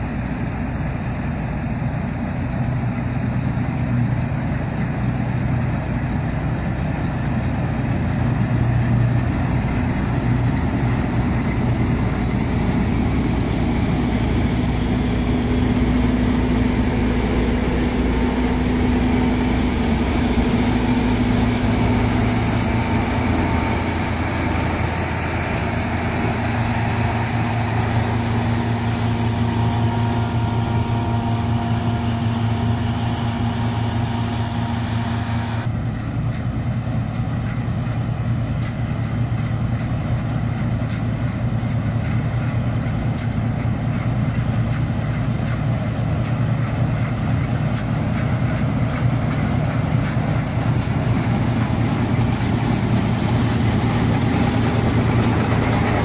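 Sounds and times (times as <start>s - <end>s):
combine harvester engine hum: 0.0s - 56.0s.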